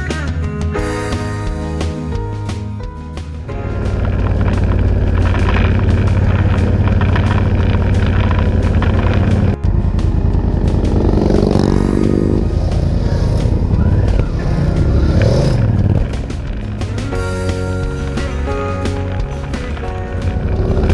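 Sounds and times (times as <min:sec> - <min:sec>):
background music: 0:00.0 - 0:20.9
motorcycle engines running: 0:03.2 - 0:20.9.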